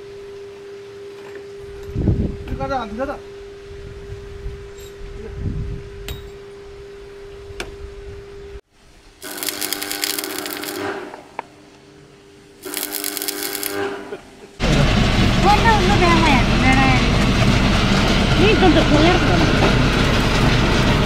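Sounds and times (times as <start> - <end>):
steady hum: 9.2 - 10.9, 12.3 - 13.8
welding arc crackling: 9.2 - 11.0, 12.6 - 13.9
passengers talking: 14.6 - 17.2, 18.3 - 19.9.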